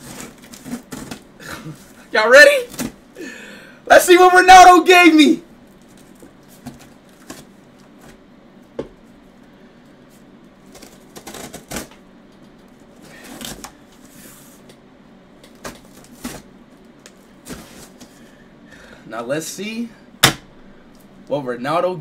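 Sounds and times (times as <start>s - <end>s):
tape and cardboard rustling: 0.0s - 3.0s, 5.7s - 8.2s, 10.1s - 14.8s, 15.4s - 18.2s.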